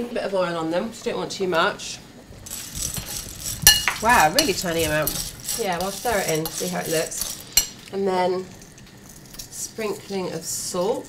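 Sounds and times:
spoon stirring chickpeas in bowl: 0:02.4 - 0:07.9
spoon clinking against bowl: 0:03.6 - 0:05.2.

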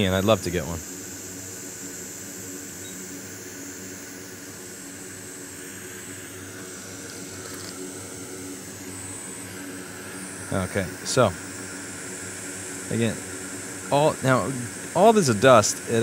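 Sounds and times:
equipment hum with faint hiss: 0:00.0 - 0:16.0.

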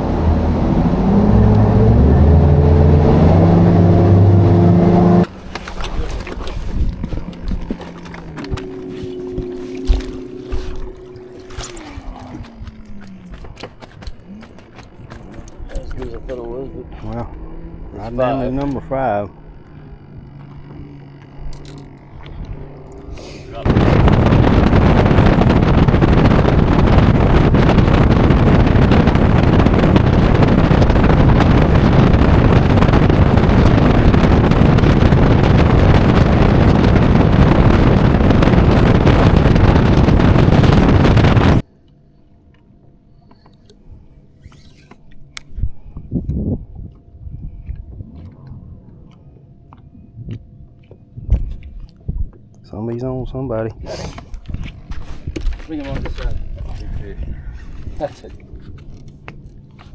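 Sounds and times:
quiet low hum: 0:05.4 - 0:26.8, 0:41.6 - 0:59.9
wind and water rush: 0:23.5 - 0:41.6.

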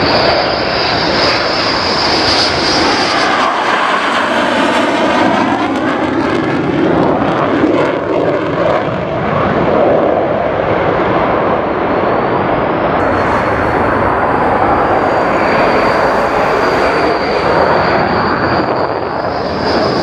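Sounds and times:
fighter jet passing low: 0:00.0 - 0:20.0
high whine: 0:12.9 - 0:20.0.

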